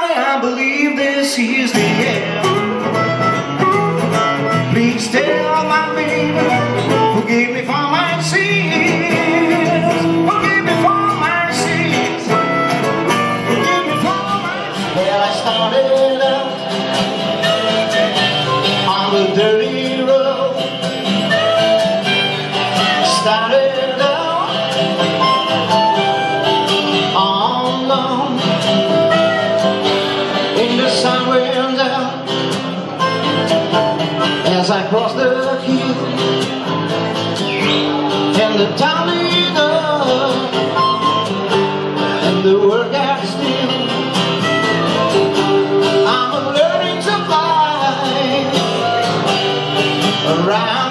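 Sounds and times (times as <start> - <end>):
acoustic guitars strumming: 0.0 - 50.9
harmonica solo: 2.1 - 15.7, 16.3 - 30.6, 32.6 - 34.5, 40.3 - 42.4, 43.7 - 50.2.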